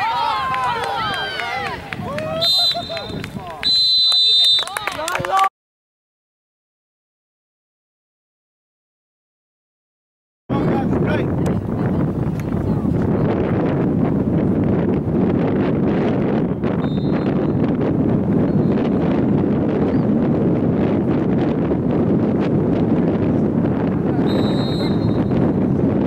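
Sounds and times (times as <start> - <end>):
wind buffeting microphone: 0.0 - 3.7, 10.5 - 26.0.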